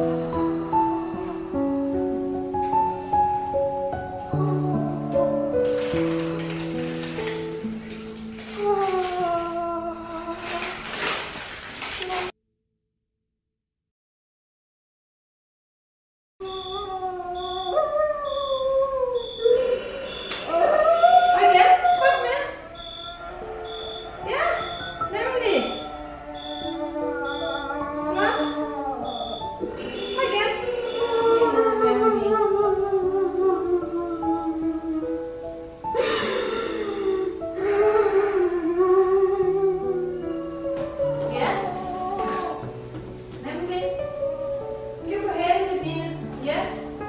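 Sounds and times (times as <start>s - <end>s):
instrumental background music: 0.0s - 12.2s, 17.4s - 47.0s
woman moaning loudly: 8.5s - 10.9s, 16.5s - 35.3s, 36.0s - 42.7s
hospital monitor beeping: 16.4s - 31.5s
woman crying out: 16.5s - 29.7s.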